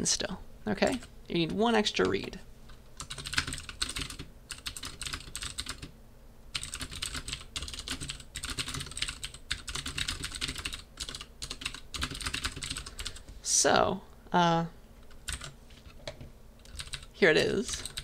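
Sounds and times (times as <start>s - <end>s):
computer keyboard typing: 0.9s - 5.9s, 6.5s - 13.3s, 15.0s - 16.0s, 16.6s - 17.1s, 17.7s - 18.0s.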